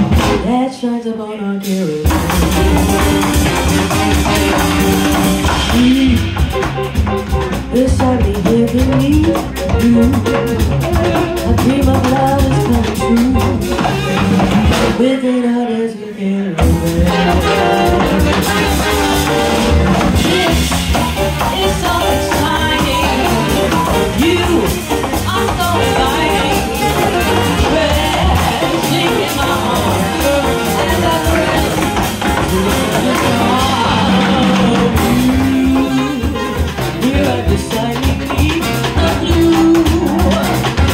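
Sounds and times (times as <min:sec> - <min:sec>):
drum kit striking: 0:00.0 - 0:00.6, 0:02.1 - 0:15.0, 0:16.6 - 0:40.9
woman singing: 0:00.0 - 0:07.0, 0:07.6 - 0:18.9, 0:20.2 - 0:40.9
jazz big band playing: 0:00.0 - 0:15.8, 0:16.5 - 0:40.9.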